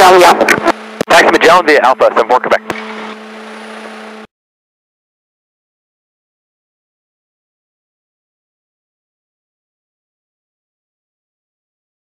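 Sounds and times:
small plane cockpit hum: 0.0 - 4.3.

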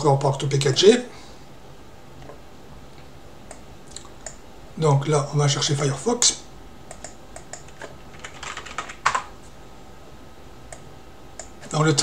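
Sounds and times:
typing on computer keyboard: 6.9 - 9.3.

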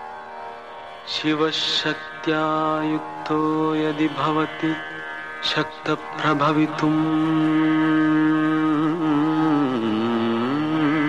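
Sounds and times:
person singing a long vowel: 1.1 - 11.0.

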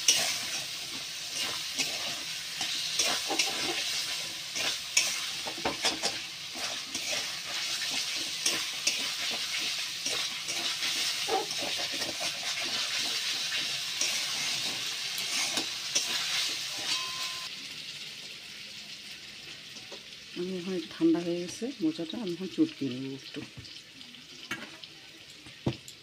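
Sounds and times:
metal spatula scraping pan: 0.0 - 17.5
potatoes sizzling in hot oil: 0.0 - 26.0.

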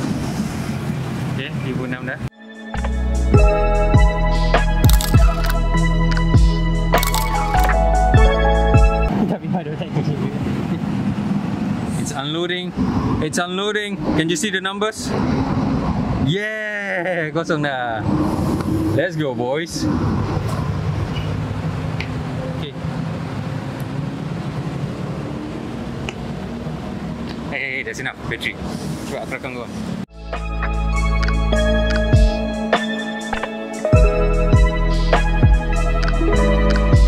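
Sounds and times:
street traffic: 0.0 - 37.0.

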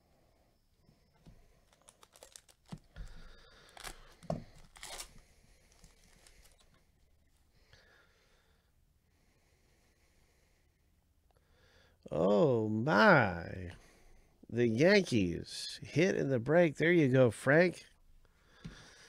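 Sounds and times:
trading cards and wrappers rustling: 1.3 - 7.4.

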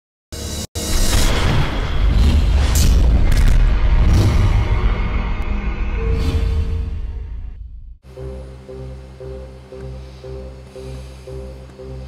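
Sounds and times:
intro music: 8.0 - 12.0.

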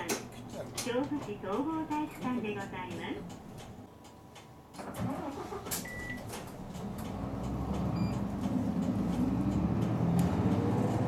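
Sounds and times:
bus diesel engine accelerating: 4.8 - 11.0.

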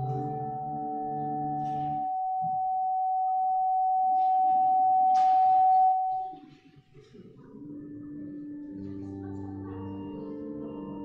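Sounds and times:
pa system feedback squeal: 0.0 - 6.4
faint room noise: 3.9 - 11.0.

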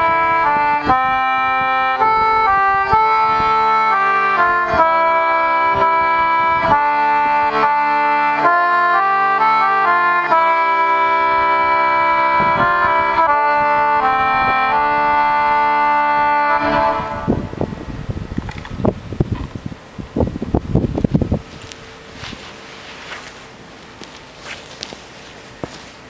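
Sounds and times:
concertina playing held chords: 0.0 - 18.0
boots scuffing on gritty floor: 21.4 - 26.0.

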